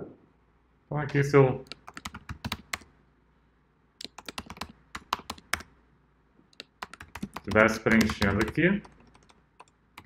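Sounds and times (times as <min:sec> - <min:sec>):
computer keyboard typing: 0:01.6 - 0:02.9, 0:04.0 - 0:05.7, 0:06.5 - 0:10.0.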